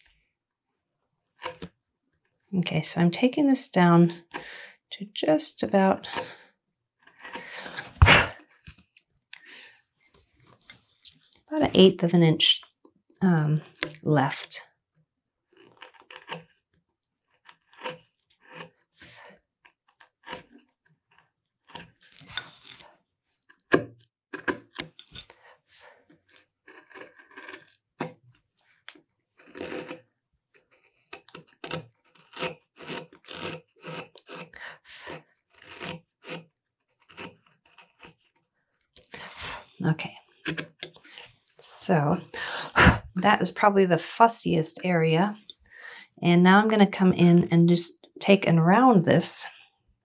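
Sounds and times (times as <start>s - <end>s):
gouge slicing and scraping wood: 1.4s - 1.7s, 7.0s - 8.8s, 15.5s - 38.5s, 40.2s - 41.4s.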